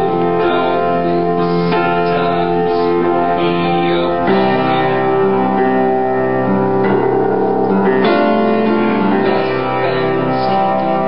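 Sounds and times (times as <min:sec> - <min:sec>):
piano playing slow chords: 0:00.0 - 0:11.0.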